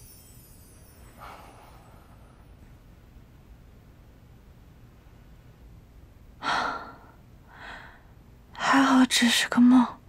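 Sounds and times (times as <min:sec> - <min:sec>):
woman breathing: 0:01.1 - 0:02.7, 0:06.4 - 0:08.2
woman speaking: 0:08.6 - 0:10.0.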